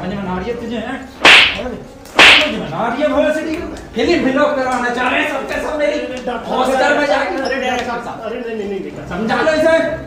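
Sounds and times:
sharp slaps: 1.2s - 2.6s.

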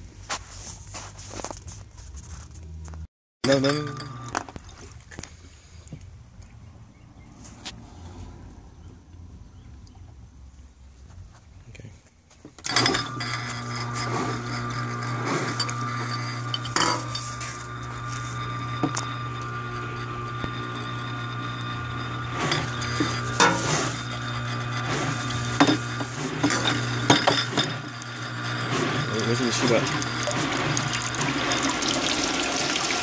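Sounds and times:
pump humming: 3.5s - 5.6s, 12.6s - 33.0s
glass bottles clinking: 15.5s - 17.7s, 25.0s - 28.1s, 28.9s - 32.8s
water jetting: 21.2s - 33.0s.

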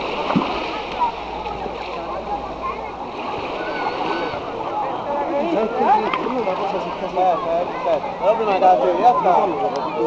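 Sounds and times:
seawater splashing: 0.0s - 9.6s
people's voices and calls: 0.0s - 10.0s.

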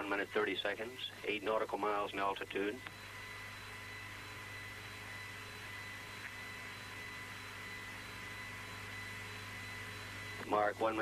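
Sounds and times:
low electrical hum: 0.0s - 11.0s
faint steady whistle tones: 2.9s - 11.0s.

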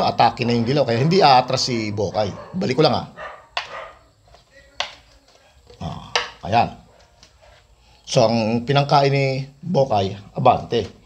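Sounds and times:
man talking: 0.0s - 3.2s, 4.4s - 6.9s, 8.0s - 11.0s.

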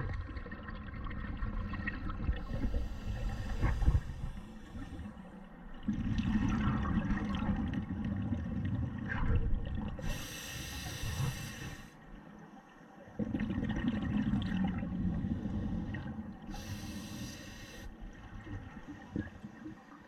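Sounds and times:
hissing regulator inhalations: 2.5s - 5.1s, 10.0s - 12.0s, 16.5s - 17.9s.

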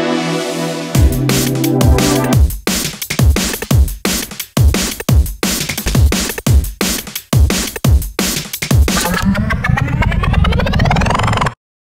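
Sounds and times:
drum and bass beat: 0.9s - 11.1s
steady bass: 1.0s - 2.4s
rising synth sweep: 9.0s - 11.6s.

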